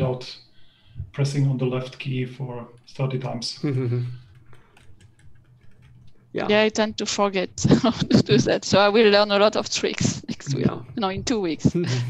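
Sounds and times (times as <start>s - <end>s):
low steady hum: 0.0s - 12.0s
faint irregular clicks: 2.6s - 3.5s, 4.2s - 7.0s.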